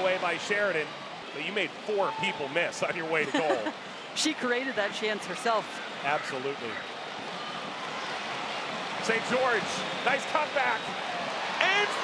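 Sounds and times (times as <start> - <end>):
rushing stadium background noise: 0.0 - 12.0.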